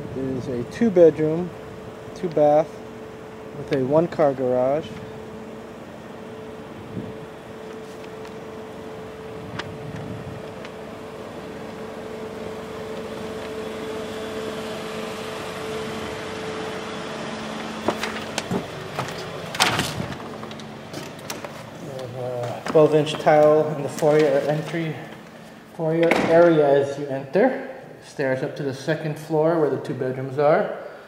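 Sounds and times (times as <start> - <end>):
mechanical hum: 0.0 - 31.0.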